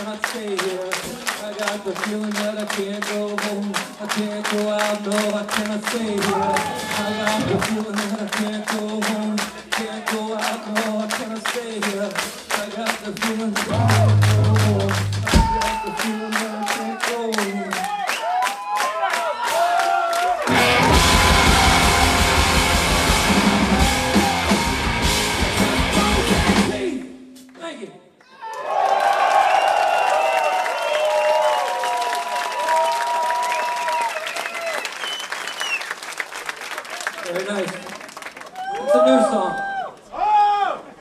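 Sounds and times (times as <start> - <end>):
punk rock band playing: 13.6 - 15.8, 20.4 - 26.9.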